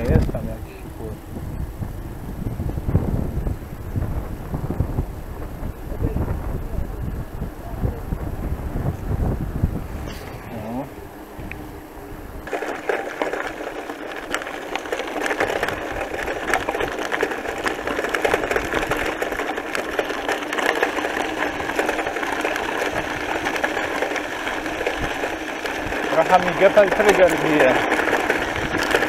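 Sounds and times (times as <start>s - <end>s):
bicycle tyres rolling on gravel: 0.0s - 29.0s.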